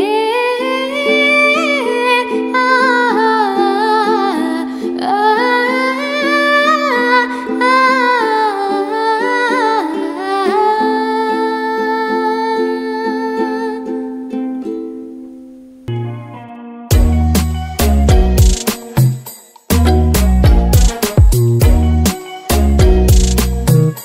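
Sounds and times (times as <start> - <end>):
woman singing wordlessly: 0.0 - 14.2
ukulele strumming: 0.0 - 24.0.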